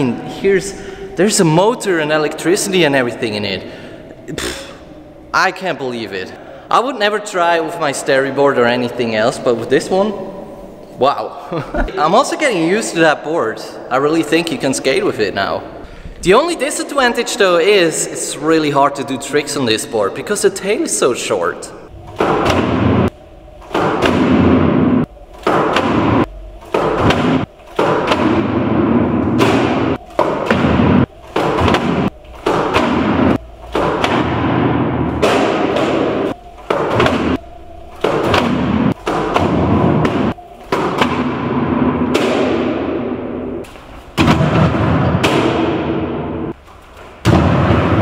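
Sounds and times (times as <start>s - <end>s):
skateboard thuds on wood: 25.4s - 37.4s.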